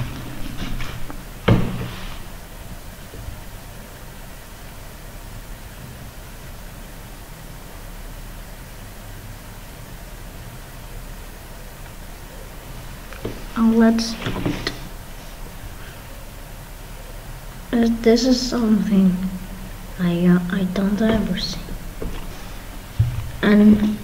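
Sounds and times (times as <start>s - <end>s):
low background hum: 0.0s - 24.0s.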